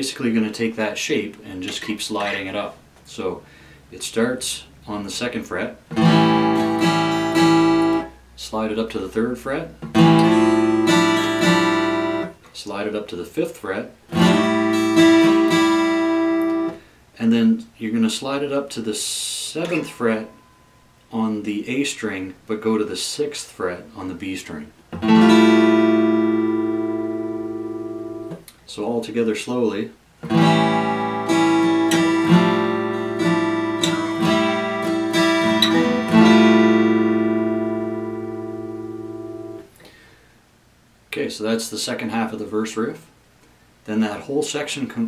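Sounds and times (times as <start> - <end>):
acoustic guitar chord strummed: 5.9 - 8.3, 9.8 - 12.4, 14.1 - 17.0, 19.6 - 21.1, 25.0 - 28.4, 30.2 - 40.0.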